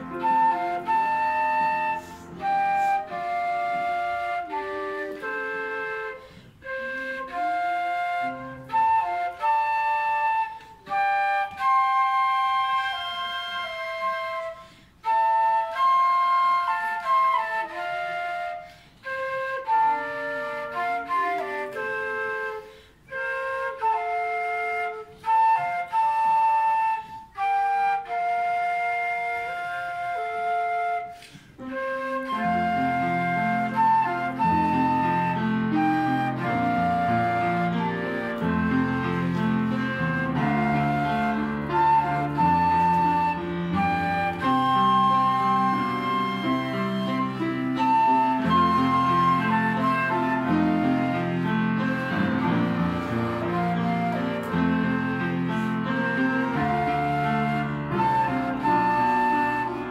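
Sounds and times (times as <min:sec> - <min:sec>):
flutes playing a duet: 0:00.0 - 0:59.9
piano accompaniment: 0:00.0 - 0:59.9.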